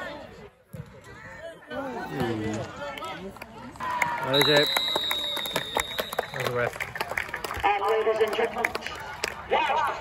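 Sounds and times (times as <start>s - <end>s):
referee's whistle long blast: 4.3s - 6.3s.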